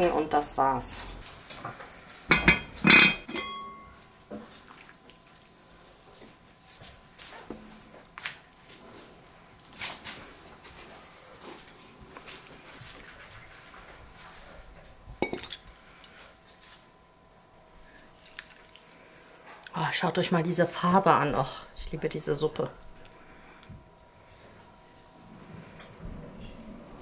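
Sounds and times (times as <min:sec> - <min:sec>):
ladle clinking against pot: 0:02.3 - 0:03.9
ladle clinking on porcelain plate: 0:02.3 - 0:03.9, 0:15.2 - 0:15.5.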